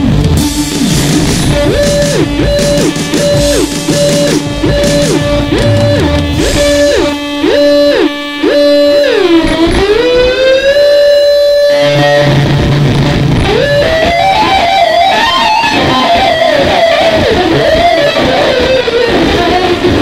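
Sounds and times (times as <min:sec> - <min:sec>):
bass line: 0:00.0 - 0:20.0
electric guitar lead: 0:00.0 - 0:20.0.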